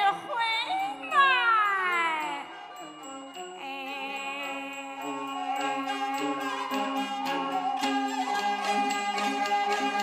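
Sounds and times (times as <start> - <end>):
soft sustained accompaniment: 0.0 - 10.0.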